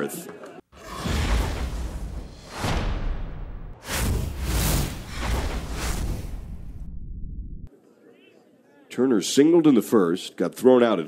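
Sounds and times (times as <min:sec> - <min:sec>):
whooshes: 0:00.8 - 0:07.7
deep bass rumble: 0:01.6 - 0:07.7.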